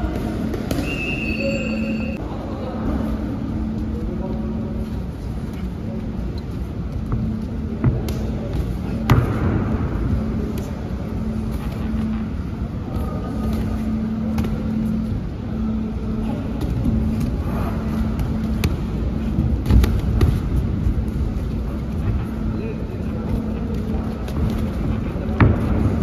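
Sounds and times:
steady low rumble and hum: 0.0 - 26.0
boxing gloves slapping and thudding: 19.5 - 20.7.

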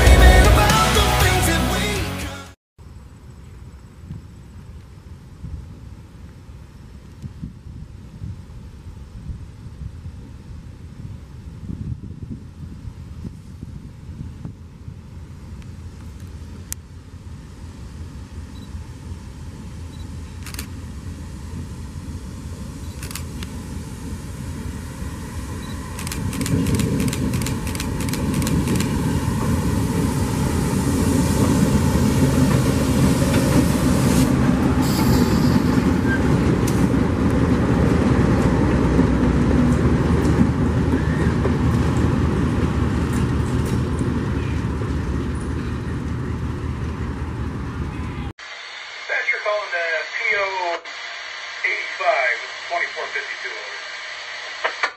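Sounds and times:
diesel locomotive engines rumbling: 8.0 - 48.4, 49.1 - 54.9
sharp clicks: 26.0 - 29.0.

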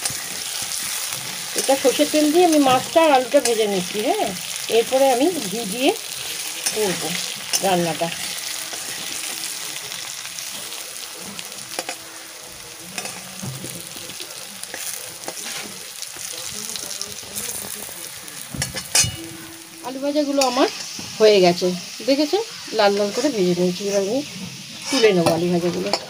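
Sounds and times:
potatoes sizzling in oil: 0.0 - 26.0
metal spatula scraping pan: 6.1 - 10.6, 15.2 - 15.8, 18.6 - 21.4, 22.4 - 26.0.

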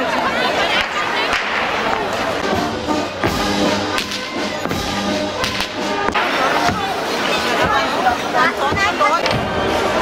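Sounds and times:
crowd chatter: 0.0 - 10.0
brass band music: 2.1 - 10.0
whip cracking: 3.9 - 4.5, 5.4 - 6.4.

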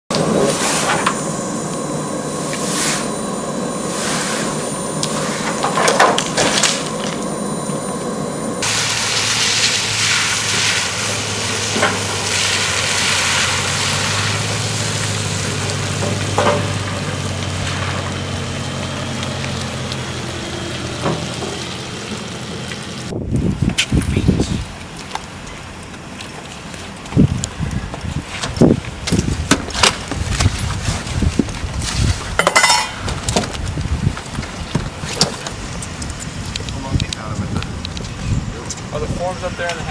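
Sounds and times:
low engine hum: 0.1 - 32.3.

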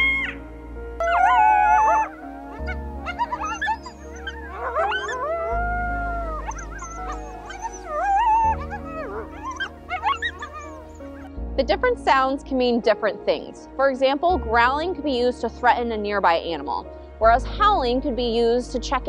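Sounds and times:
coyote howling: 0.0 - 0.4, 1.0 - 11.3.

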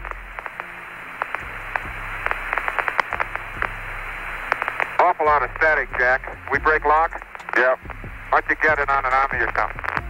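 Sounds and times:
low hum: 0.0 - 10.0
radio static crackling: 0.0 - 10.0.

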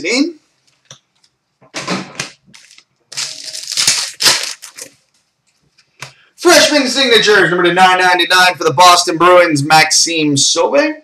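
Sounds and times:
card packaging crinkling: 2.5 - 5.0.

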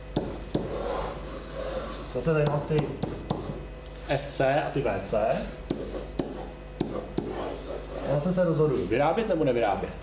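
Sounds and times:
marker tip tapping board: 0.2 - 0.8, 2.4 - 3.6, 5.7 - 7.4
marker scraping on whiteboard: 0.2 - 3.6, 5.7 - 8.9.

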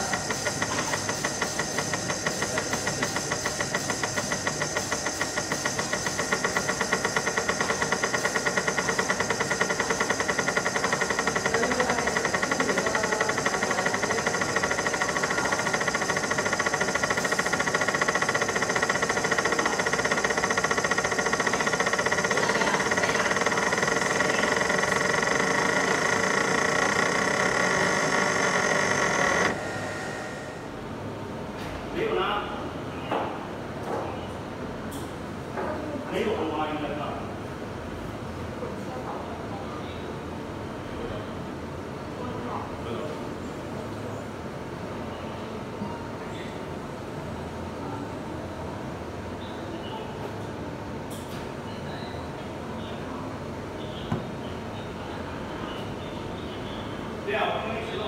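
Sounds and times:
laser engraving machine pulsing: 0.0 - 30.8.

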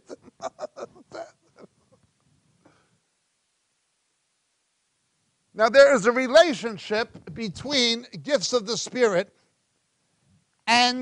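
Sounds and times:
man chuckling: 0.0 - 2.0.

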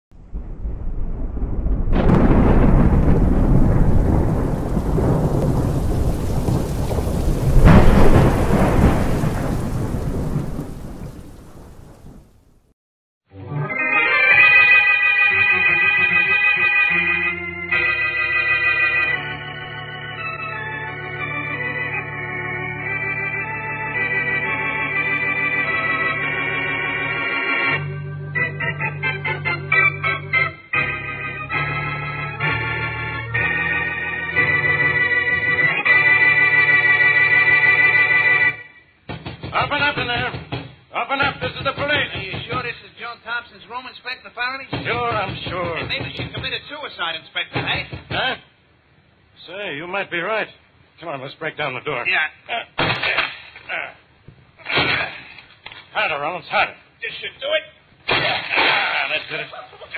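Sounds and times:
rolling thunder: 0.1 - 12.6
sharp thunder clap: 0.1 - 12.6
rain: 0.2 - 12.7
organ chord: 13.4 - 38.7.

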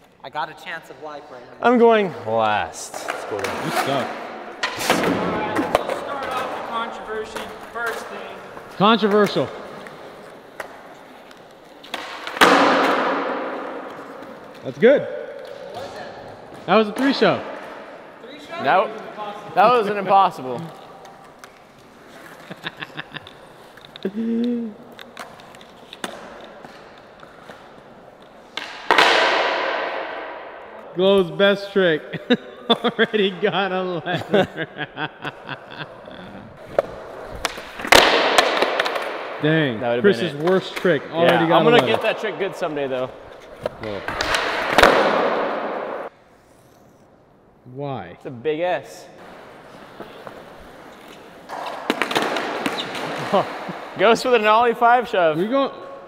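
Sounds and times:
skateboard wheels rolling: 2.9 - 14.6, 15.4 - 24.1, 36.6 - 39.3, 49.2 - 54.0
skateboard cracking on concrete: 49.2 - 53.5.

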